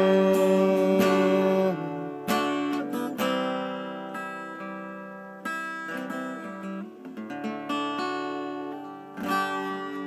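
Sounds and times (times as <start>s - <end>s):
acoustic guitar chords strummed: 0.0s - 10.0s.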